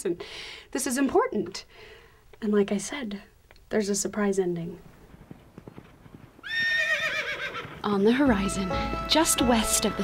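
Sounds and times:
faint horse hoofbeats: 4.4 - 10.0
horse whinnying: 5.8 - 7.9.

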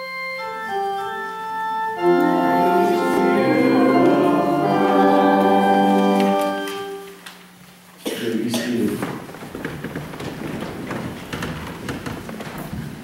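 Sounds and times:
organ chord: 0.0 - 7.2
people shuffling in wooden pews: 0.0 - 13.0.

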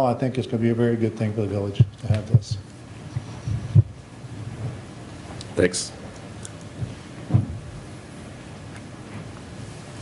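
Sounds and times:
dull low thumps: 1.8 - 4.9, 6.8 - 7.9.

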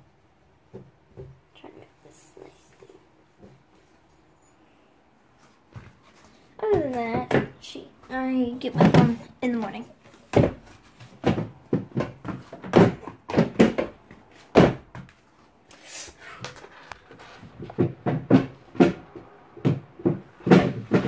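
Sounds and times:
objects knocking and clattering: 10.1 - 15.2, 16.4 - 21.0.

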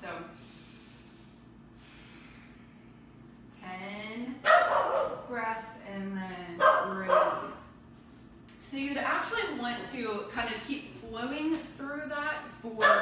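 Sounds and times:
dog barking: 4.4 - 5.2, 6.6 - 7.5, 12.8 - 13.0.

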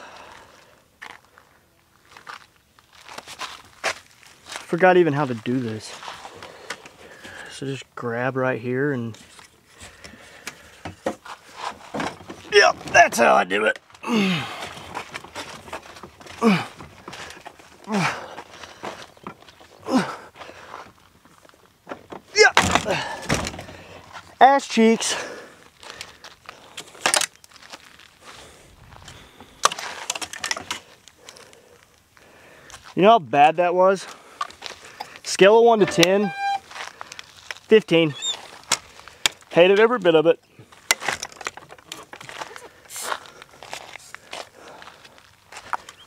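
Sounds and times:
hard parts clicking and clunking: 9.2 - 19.5, 21.8 - 24.2, 26.8 - 27.4, 29.1 - 31.6, 34.4 - 37.0, 40.7 - 42.6.

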